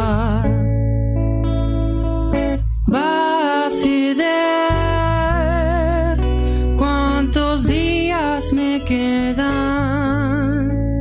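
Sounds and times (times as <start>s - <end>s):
person singing with vibrato: 0.0s - 0.7s, 2.8s - 11.0s
guitar accompaniment: 0.0s - 11.0s.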